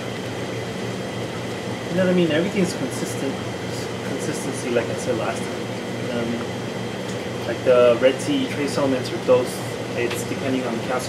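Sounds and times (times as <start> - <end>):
aquarium pumps humming: 0.0 - 11.0.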